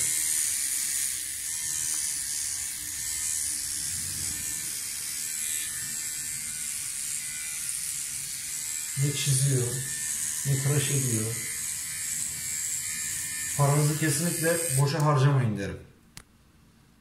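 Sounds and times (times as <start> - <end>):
cordless trimmer whirring: 0.0 - 15.2.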